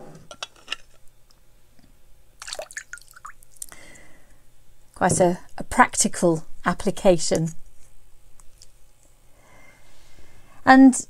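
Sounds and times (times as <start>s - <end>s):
water drips and plinks: 2.4s - 3.4s
water trickling: 2.4s - 3.6s.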